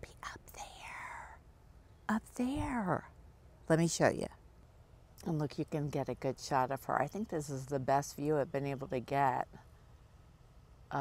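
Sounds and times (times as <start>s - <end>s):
woman whispering: 0.0s - 1.4s.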